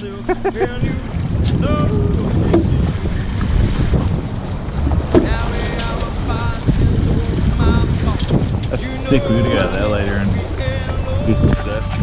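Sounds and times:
water rushing along boat hulls: 0.0 - 12.0
wind buffeting microphone: 0.0 - 12.0.

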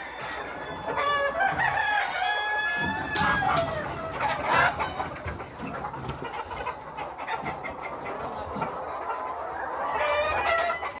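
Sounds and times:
loud long hen call: 0.0 - 5.2, 9.4 - 11.0
hens clucking: 0.0 - 11.0.

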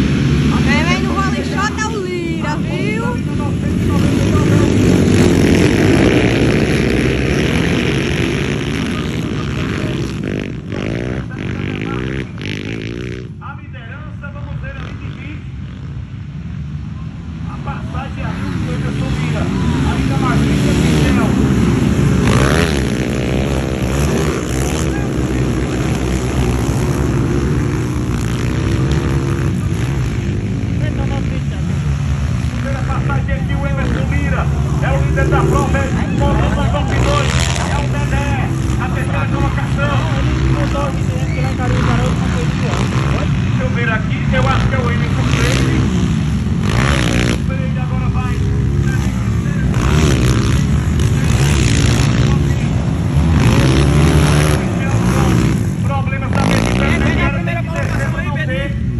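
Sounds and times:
dirt bike engines revving: 0.0 - 58.9.

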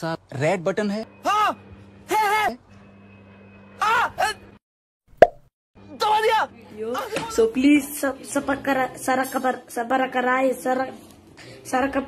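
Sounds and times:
man shouting: 1.2 - 2.6
sharp pop: 5.2 - 5.4.

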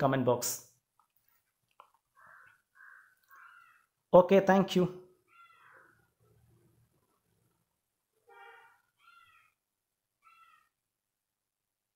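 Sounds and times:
faint animal calls: 2.1 - 4.0, 5.2 - 6.2, 8.2 - 9.6, 10.2 - 10.8.

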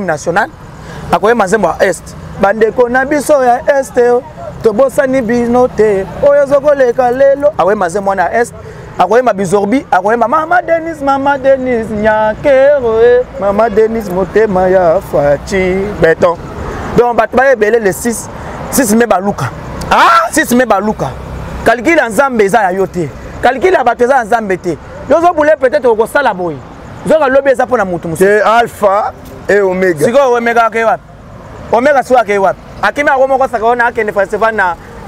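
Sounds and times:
low outdoor background noise: 0.0 - 35.0
man talking animatedly: 0.0 - 35.0.

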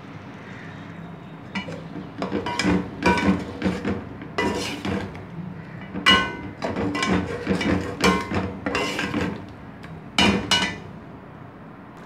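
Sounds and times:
metal clanks against a pot: 1.5 - 9.5, 10.2 - 11.0
metal spatula scraping a pot: 1.6 - 9.4.

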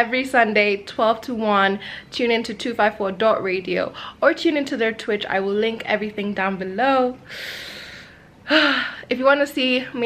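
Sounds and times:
woman breathing out: 7.3 - 9.1
woman breathy hah: 7.3 - 9.1.

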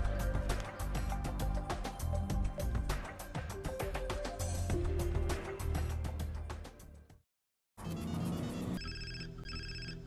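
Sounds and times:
cell phone ringtone ringing: 8.5 - 10.0.

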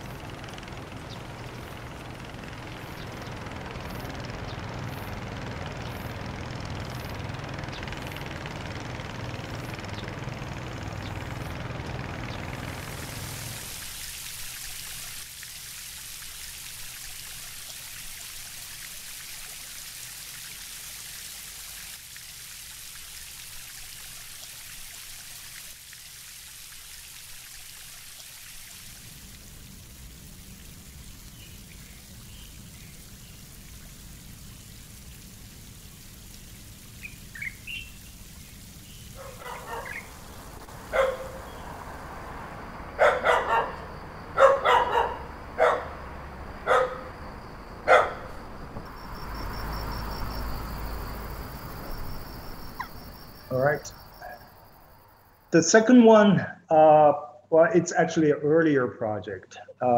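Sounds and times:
rain falling on water: 0.0 - 46.9, 47.9 - 55.0
bird chirps: 37.0 - 40.2
dog barking: 39.2 - 40.1, 40.9 - 41.5, 43.0 - 46.0, 46.6 - 47.2, 47.8 - 48.3.

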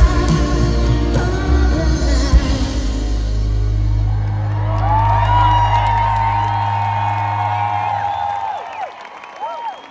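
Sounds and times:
crowd cheering and whooping: 3.7 - 9.9.

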